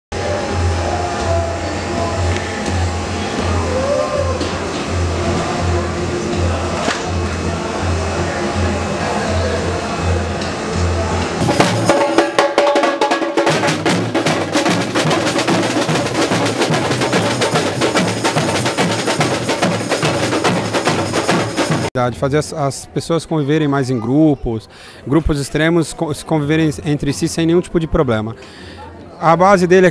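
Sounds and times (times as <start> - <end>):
deep bass drum beat: 11.4 - 21.9
samba drumming: 11.4 - 21.9
snare drums: 11.4 - 21.9
tamborim: 11.4 - 21.9.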